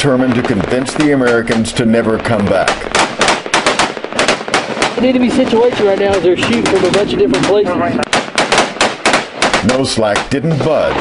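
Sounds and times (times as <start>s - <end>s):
rapid gunfire: 0.0s - 11.0s.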